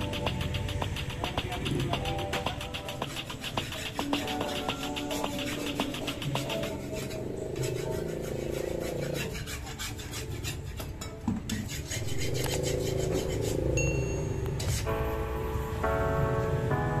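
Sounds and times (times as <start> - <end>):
hoe and trowel scraping mortar: 0.0 - 14.9
faint background music: 0.0 - 17.0.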